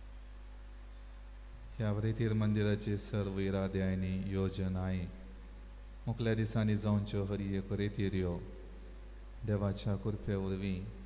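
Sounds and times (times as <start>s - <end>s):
electrical mains hum: 0.0s - 11.0s
man talking: 1.8s - 5.2s, 6.1s - 8.5s, 9.4s - 11.0s.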